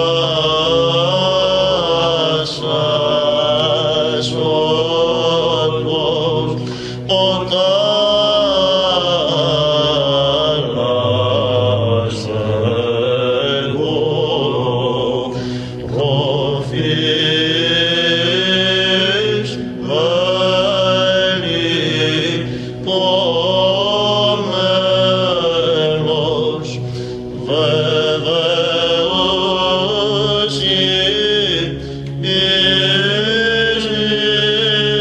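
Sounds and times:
low held drone: 0.0 - 35.0
man chanting a slow hymn: 0.0 - 35.0.

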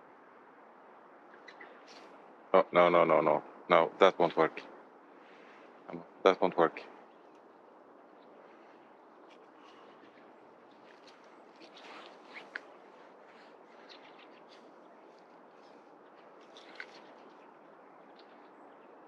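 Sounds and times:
dog scratching and rustling: 10.8 - 12.7.

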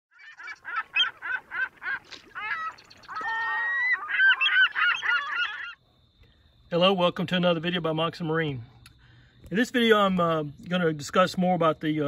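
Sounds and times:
geese honking: 0.2 - 5.8.

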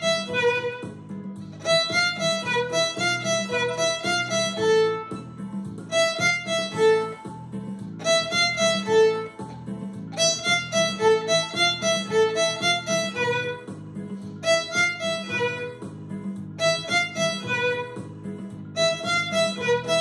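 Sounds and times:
solo violin playing: 0.0 - 7.3, 8.0 - 9.4, 10.1 - 13.7, 14.4 - 15.8, 16.6 - 18.0, 18.8 - 20.0.

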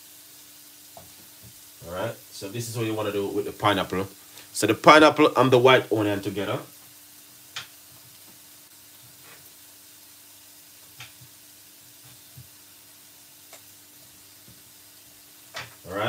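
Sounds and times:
food sizzling in a pan: 0.0 - 16.0.

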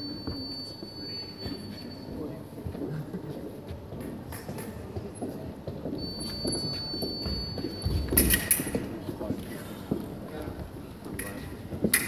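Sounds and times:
thin steady high tone: 0.0 - 2.4, 6.0 - 8.4.

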